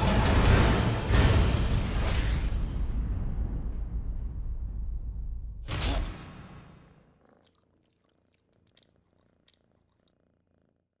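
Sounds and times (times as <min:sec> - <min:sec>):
cat purring: 0:06.9 - 0:11.0.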